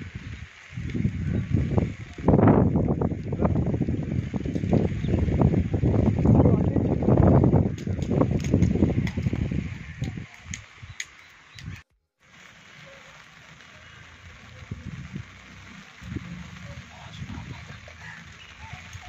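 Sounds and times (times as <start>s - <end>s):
low rumble across microphone: 0.0s - 10.8s, 11.7s - 19.0s
light rain hiss: 0.0s - 19.0s.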